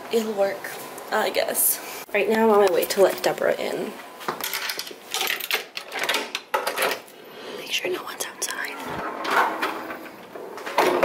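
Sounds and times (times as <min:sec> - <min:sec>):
door lock and handle rattling: 0:04.5 - 0:07.0.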